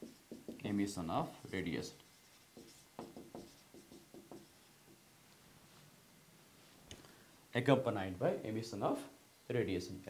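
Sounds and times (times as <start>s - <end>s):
marker pen writing on whiteboard: 0.0s - 5.0s.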